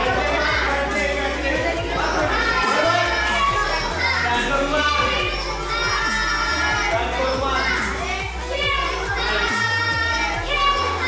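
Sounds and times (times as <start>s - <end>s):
background music with bass line: 0.0s - 11.0s
children shouting: 0.0s - 11.0s.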